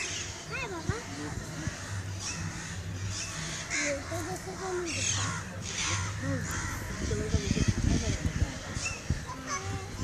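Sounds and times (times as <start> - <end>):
crows cawing: 0.0 - 10.0.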